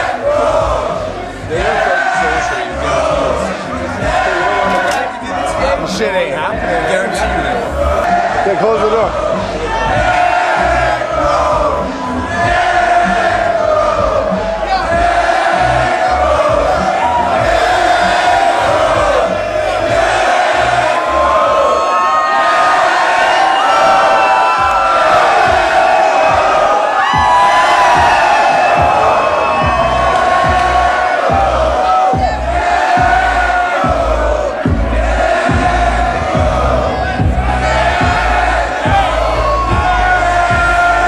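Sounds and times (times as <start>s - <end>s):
bass-heavy music: 0.0s - 41.0s
crowd shouting and cheering: 0.0s - 41.0s.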